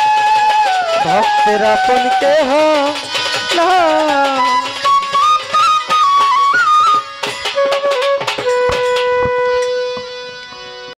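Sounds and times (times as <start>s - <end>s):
hand drum strokes: 0.0s - 10.6s
bamboo flute melody: 0.0s - 11.0s.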